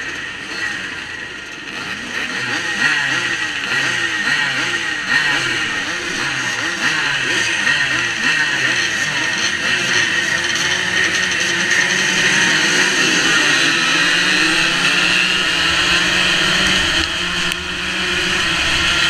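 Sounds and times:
motocross bikes revving: 0.0 - 19.0.

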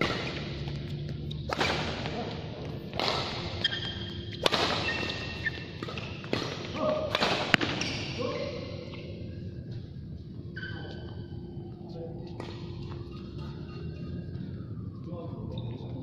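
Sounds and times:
rackets hitting shuttlecock: 0.0 - 2.2, 2.9 - 8.1
shoes squeaking on court: 3.2 - 6.4, 10.5 - 11.3.

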